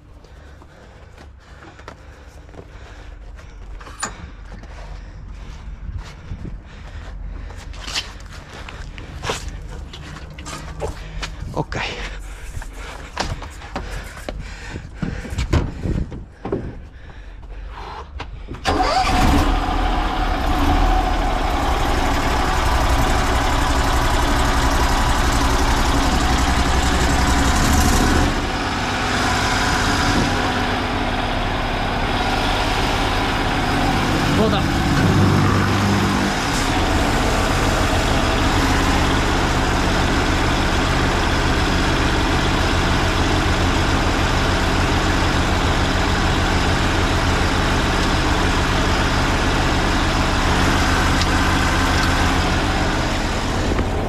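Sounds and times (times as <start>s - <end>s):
small engine running: 18.7s - 54.0s.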